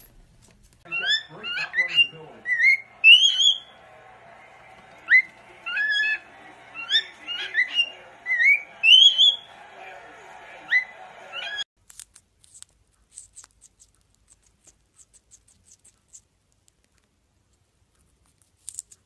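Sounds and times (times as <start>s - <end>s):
cockatiel whistling: 0.9s - 3.8s, 5.0s - 9.5s, 10.7s - 11.6s.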